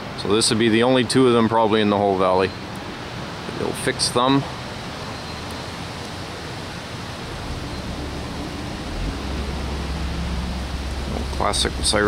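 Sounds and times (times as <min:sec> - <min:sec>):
even hiss: 0:03.5 - 0:12.0
low rumble: 0:07.2 - 0:12.0.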